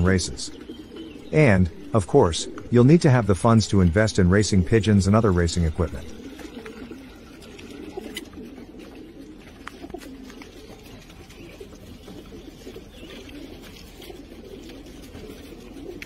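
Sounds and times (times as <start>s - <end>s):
pigeons cooing: 0.0s - 16.0s.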